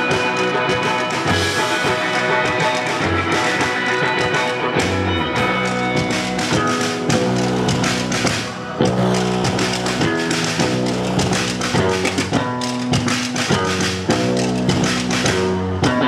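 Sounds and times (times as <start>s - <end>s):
rock band playing: 0.0s - 16.0s.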